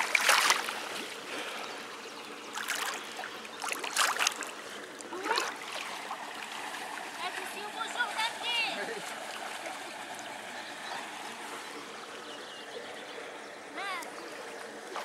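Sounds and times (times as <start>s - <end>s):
short water splashes: 0.0s - 12.2s, 13.7s - 15.0s
water sloshing around wading legs: 0.0s - 12.2s, 13.8s - 15.0s.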